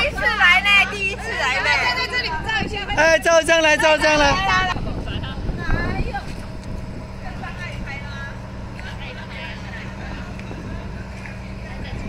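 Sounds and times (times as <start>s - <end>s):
low machine hum: 0.0s - 12.0s
voices talking: 0.0s - 12.0s.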